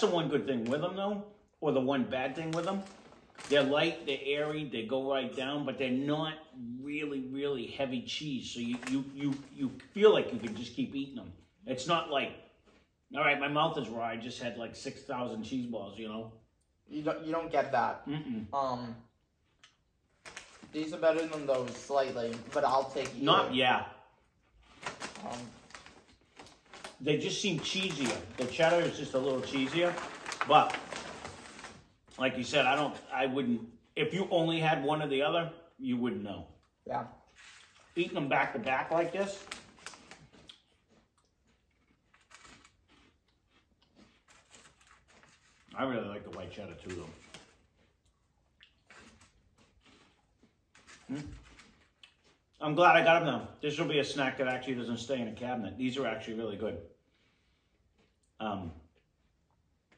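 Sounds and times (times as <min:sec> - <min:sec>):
person speaking: 0:20.7 - 0:24.0, 0:25.0 - 0:25.7, 0:26.9 - 0:31.0
crunchy snack being chewed: 0:38.8 - 0:45.8, 0:46.8 - 0:52.6.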